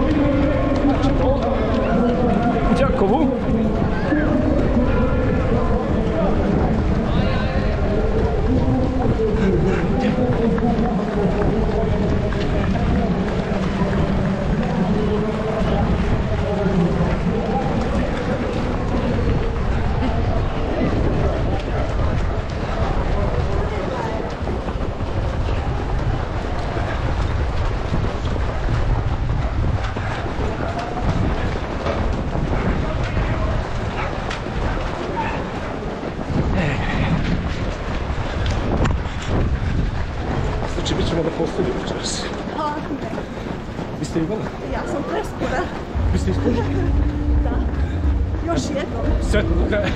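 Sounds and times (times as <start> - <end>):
runners footsteps on pavement: 0.0 - 49.9
scattered voices: 0.0 - 49.9
wind and motion rumble: 0.0 - 49.9.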